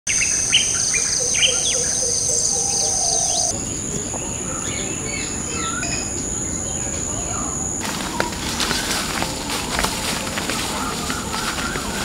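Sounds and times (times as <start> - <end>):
birds chirping: 0.1 - 12.0
high-pitched insect drone: 0.1 - 12.0.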